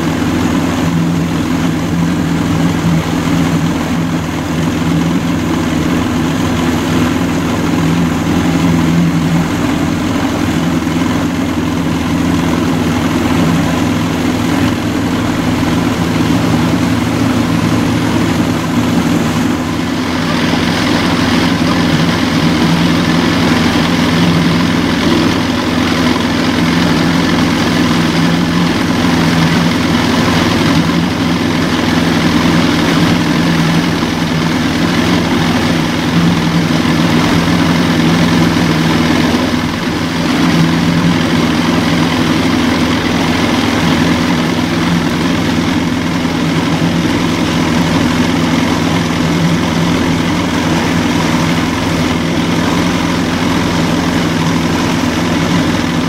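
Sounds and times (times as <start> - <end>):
motorboat engine humming: 0.0 - 56.0
water rushing: 0.0 - 56.0.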